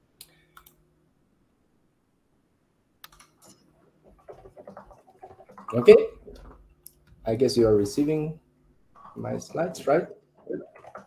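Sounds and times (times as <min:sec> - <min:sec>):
computer keyboard clicks: 0:03.0 - 0:03.6.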